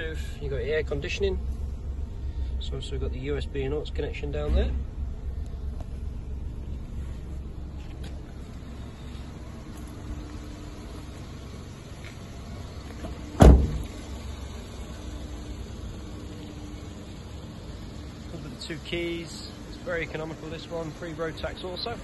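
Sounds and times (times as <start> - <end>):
low steady rumble: 0.0 - 22.0
car door shutting: 12.8 - 14.3.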